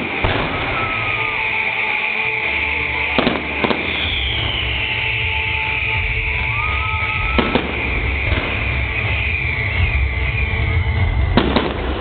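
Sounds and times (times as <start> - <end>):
firework bangs: 0.0 - 2.0, 3.0 - 12.0.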